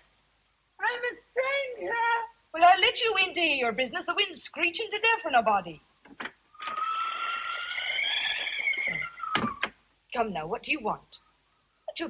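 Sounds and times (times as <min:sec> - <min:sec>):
door hinges creaking: 0:06.1 - 0:09.8.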